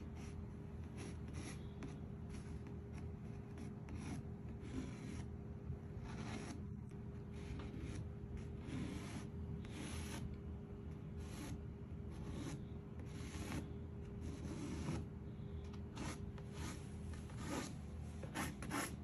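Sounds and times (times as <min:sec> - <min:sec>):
chalk rubbing over canvas: 0:16.0 - 0:19.0.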